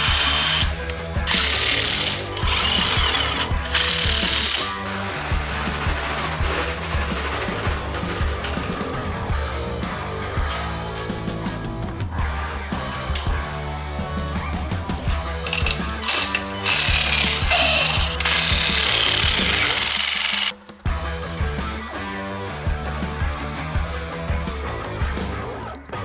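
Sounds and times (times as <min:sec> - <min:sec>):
rock music: 0:00.0 - 0:26.0
impact wrench rattling on lug nuts: 0:01.3 - 0:04.7, 0:15.4 - 0:20.5.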